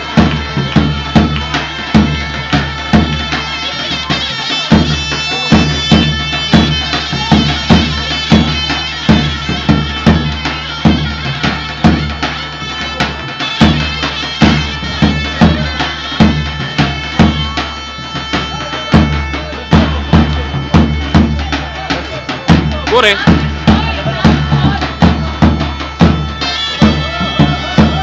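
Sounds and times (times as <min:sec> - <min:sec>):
bass drum beating: 0:00.0 - 0:03.3, 0:04.7 - 0:12.2, 0:18.9 - 0:21.8, 0:22.5 - 0:28.0
reed wind instrument melody: 0:00.0 - 0:28.0.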